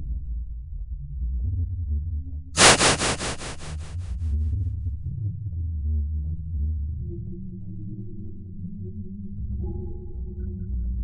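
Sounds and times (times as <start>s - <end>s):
steady higher tone: 2.6s - 4.1s.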